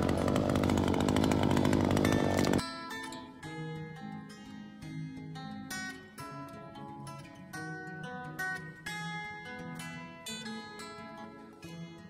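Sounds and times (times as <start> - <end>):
string trimmer engine running: 0.0 - 2.6
acoustic guitar music: 0.0 - 12.0.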